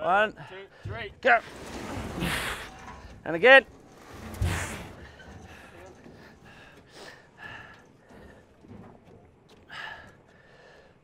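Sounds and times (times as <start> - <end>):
quiet breathing: 4.5 - 8.8, 9.5 - 11.0.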